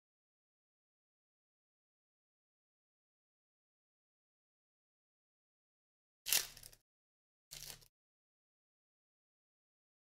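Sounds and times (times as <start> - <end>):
foil wrappers crinkling: 7.5 - 7.9.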